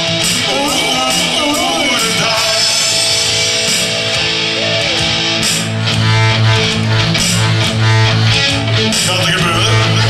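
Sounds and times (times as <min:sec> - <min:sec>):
drums with cymbals: 0:00.0 - 0:05.8
bass guitar: 0:00.0 - 0:10.0
electric guitar: 0:00.0 - 0:10.0.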